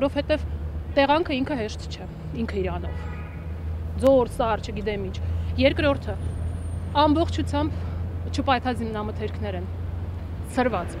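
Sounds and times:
woman speaking: 0.0s - 0.4s, 1.0s - 3.0s, 4.0s - 6.2s, 6.9s - 9.7s, 10.4s - 11.0s.

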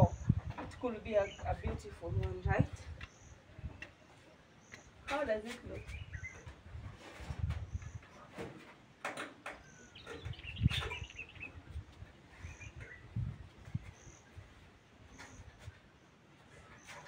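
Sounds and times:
high bird chirps: 5.8s - 6.5s, 9.6s - 11.8s.

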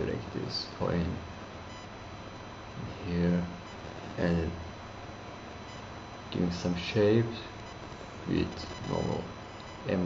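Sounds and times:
high-pitched electrical tones: 0.0s - 10.0s
microphone hiss: 0.0s - 10.0s.

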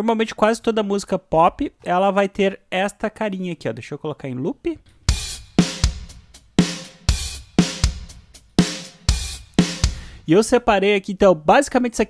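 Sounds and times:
programmed pop drum beat: 4.9s - 10.4s.

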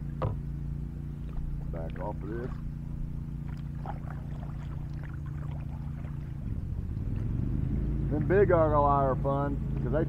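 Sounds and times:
kayak paddle stroking water: 0.0s - 9.0s
steady low hum: 0.0s - 10.0s
water splashes and drips: 1.2s - 2.8s, 3.4s - 8.4s.

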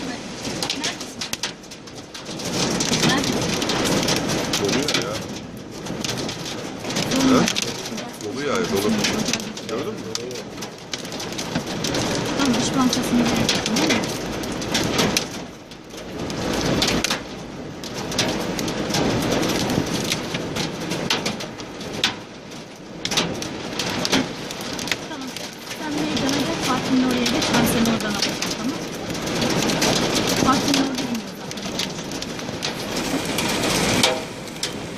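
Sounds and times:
hail and rain on vehicle roof: 0.0s - 34.9s.

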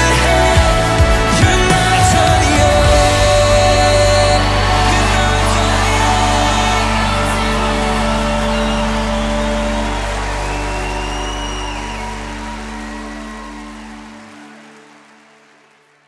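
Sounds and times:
deep bass note: 0.0s - 13.4s
keyboard pad chord: 0.0s - 15.8s.

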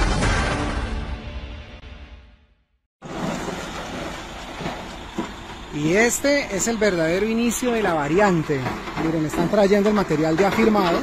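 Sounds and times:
diesel truck engine running: 3.0s - 11.0s
truck rolling over gravel: 3.0s - 11.0s.

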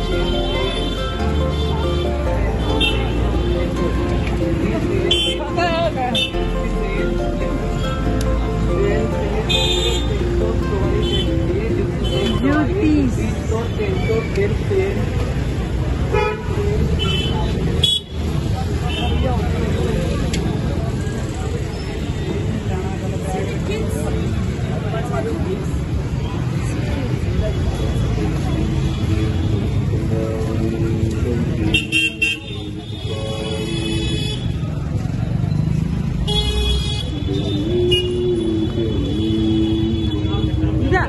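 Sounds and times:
music playing: 0.0s - 13.7s, 29.2s - 34.1s
busy street ambience: 0.0s - 41.0s
crowd voices: 0.0s - 41.0s
traffic din: 0.0s - 41.0s
vehicle horn toots: 31.7s - 34.6s, 36.2s - 40.7s.

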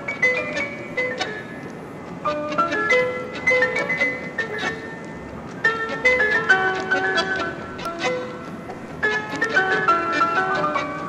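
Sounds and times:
tango music with bandoneon: 0.0s - 11.0s.

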